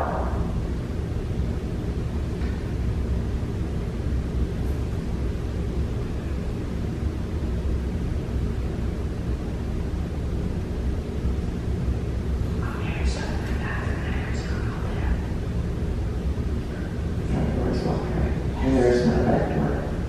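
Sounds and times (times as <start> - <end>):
low rumble: 0.0 - 20.0.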